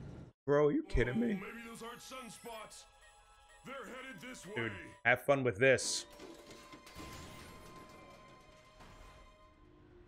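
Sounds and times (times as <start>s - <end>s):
faint cartoon background music: 0.5s - 10.0s.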